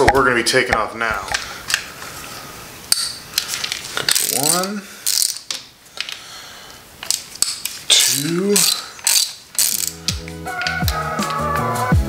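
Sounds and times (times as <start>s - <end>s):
ratchet metallic clicks: 2.9s - 6.2s, 7.0s - 11.4s.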